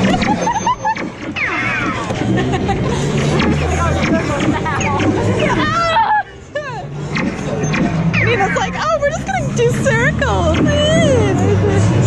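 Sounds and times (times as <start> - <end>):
electronic laser zaps: 0.0 - 2.4, 7.0 - 8.9
babble of voices: 1.9 - 12.0.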